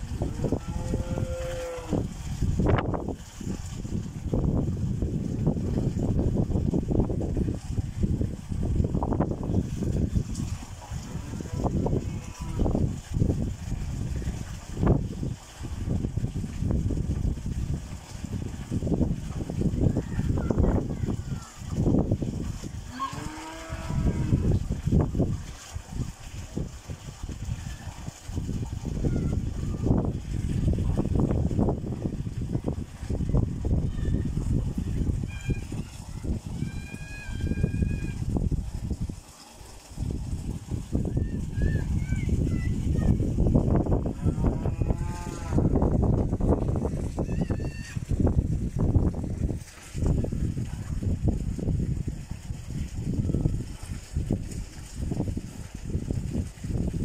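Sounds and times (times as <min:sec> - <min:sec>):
water gushing from pipe into tank: 0:00.0 - 0:57.0
wind buffeting microphone: 0:00.0 - 0:57.0
cow mooing: 0:00.5 - 0:02.0, 0:22.9 - 0:24.4, 0:44.2 - 0:45.7.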